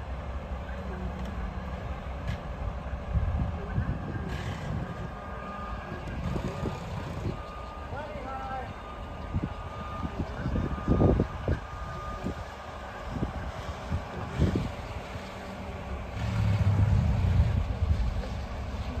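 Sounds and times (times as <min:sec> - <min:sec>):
diesel engine rumbling: 0:00.0 - 0:19.0
backup alarm beeping: 0:08.7 - 0:12.4.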